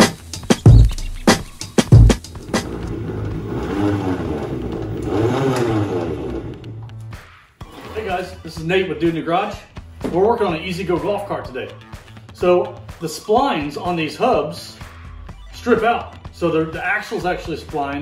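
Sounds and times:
intro music beat: 0.0 - 7.4
golf cart drivetrain whirring: 1.8 - 7.0.

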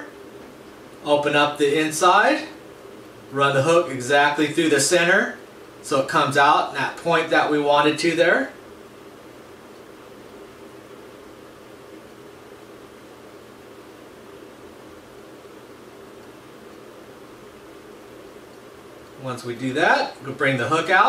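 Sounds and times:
faint hum: 0.0 - 21.0
low hiss: 0.0 - 21.0.

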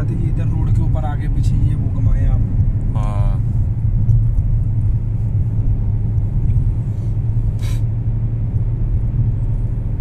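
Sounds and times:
car cabin rumble: 0.0 - 10.0.

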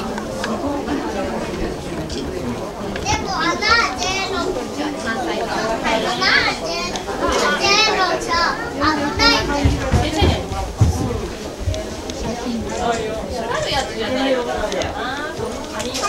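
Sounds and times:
children chattering: 0.0 - 16.0
people talking: 0.0 - 16.0.

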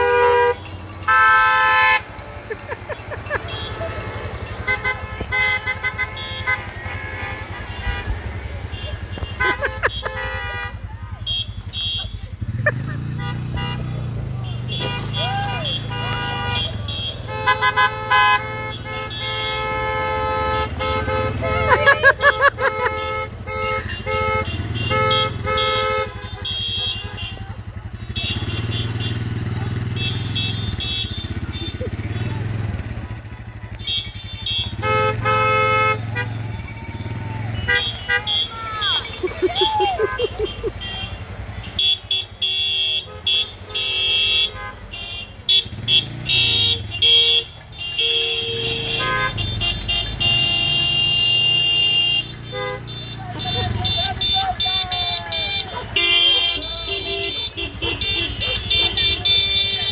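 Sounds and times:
car engines idling and rolling: 0.0 - 59.9
car horns honking: 0.0 - 59.9
voices calling out: 0.0 - 59.9.

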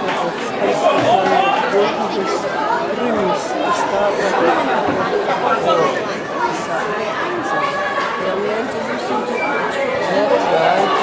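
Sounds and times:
spectators chatting: 0.0 - 11.0.

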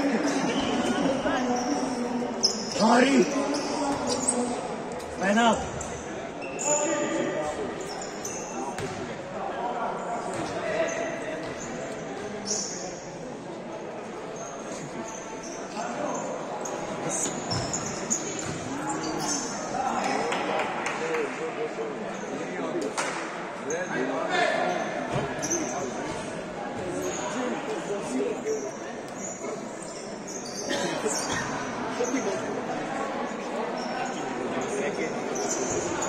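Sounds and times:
sneakers squeaking on floor: 0.0 - 9.1, 10.2 - 13.2, 14.3 - 20.1, 24.7 - 36.0.

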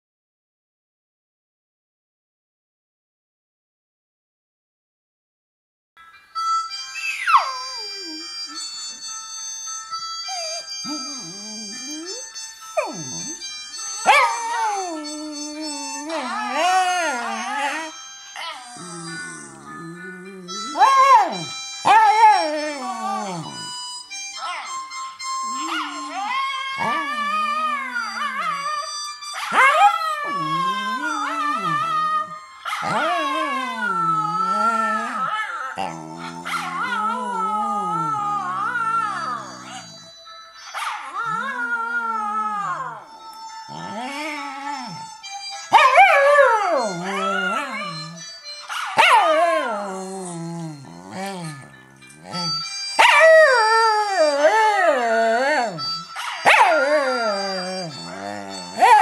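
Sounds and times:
recorded dog howling from phone: 7.1 - 9.1, 10.2 - 24.8, 25.4 - 59.0
dog howling: 10.3 - 23.8, 25.5 - 40.0, 41.1 - 43.1, 43.7 - 45.1, 45.7 - 59.0.

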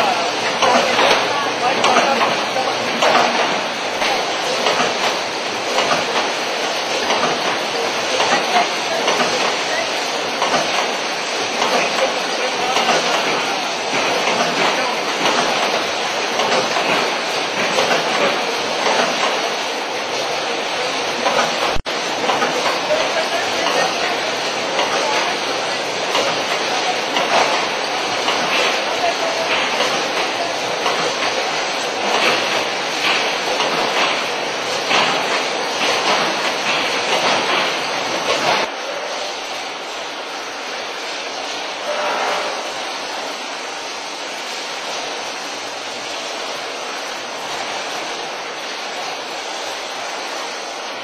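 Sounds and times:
packaging machine running: 0.0 - 39.2.

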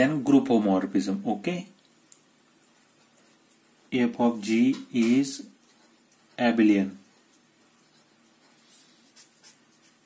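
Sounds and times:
marker writing on paper: 5.0 - 10.0.

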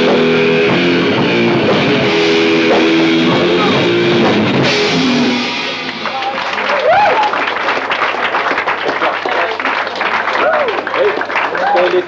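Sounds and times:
live rock band playing: 0.0 - 7.3
crowd clapping and shouting: 2.7 - 12.0.

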